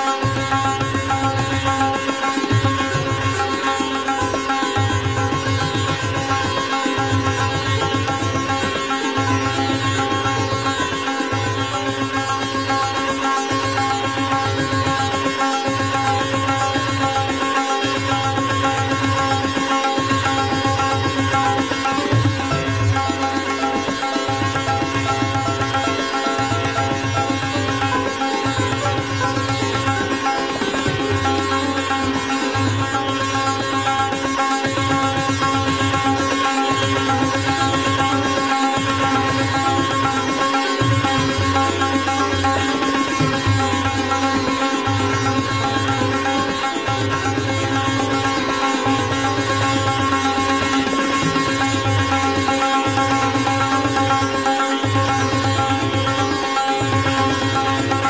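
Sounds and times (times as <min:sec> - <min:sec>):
sitar rapid plucked melody: 0:00.0 - 0:58.0.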